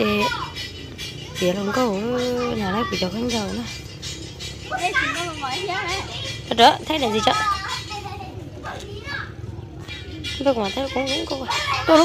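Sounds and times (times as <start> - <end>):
faint children's chatter: 0.0 - 12.0.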